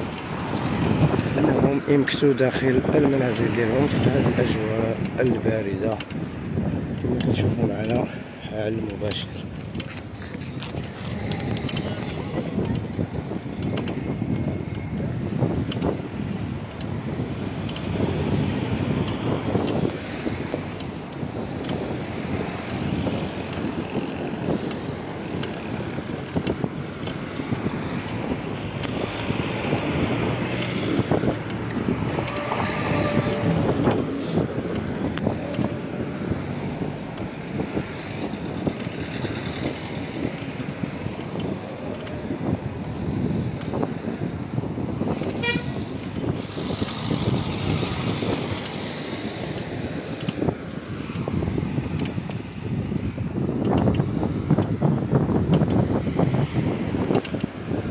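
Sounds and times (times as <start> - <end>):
street traffic rumble: 0.0 - 57.9
car horn toot: 32.2 - 33.8, 45.3 - 45.8.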